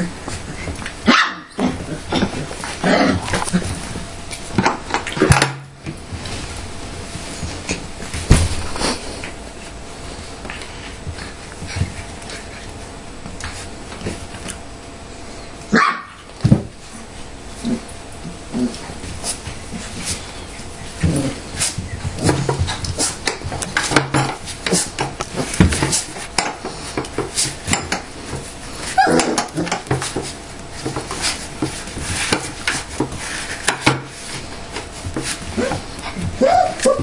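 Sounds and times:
puppies barking and yipping: 0.5 - 2.0, 15.7 - 16.3, 35.2 - 37.0
puppies yipping and barking: 35.5 - 37.0.

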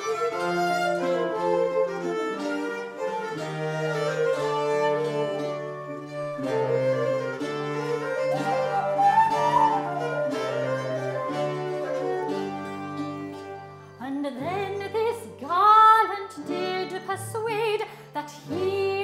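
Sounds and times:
flute: 0.0 - 14.0
lute and cittern: 0.0 - 19.0
viols: 0.0 - 19.0.

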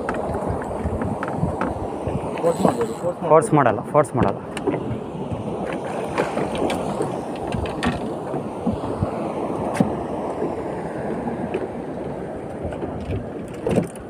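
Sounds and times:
wind and sea water rushing: 0.0 - 14.0.

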